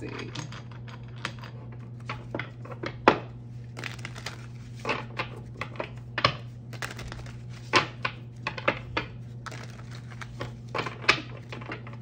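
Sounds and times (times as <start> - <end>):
low electrical hum: 0.0 - 12.0
cards being shuffled: 3.6 - 5.7, 6.6 - 8.4, 9.3 - 11.9.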